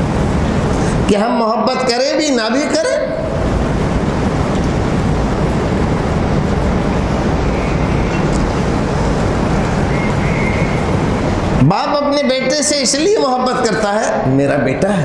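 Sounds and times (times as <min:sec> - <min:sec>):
loud steady rushing noise: 0:00.0 - 0:15.0.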